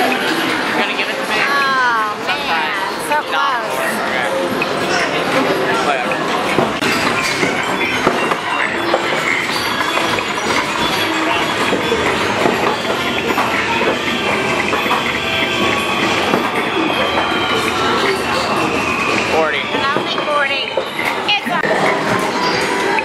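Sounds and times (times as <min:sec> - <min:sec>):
busy arcade din: 0:00.0 - 0:23.0.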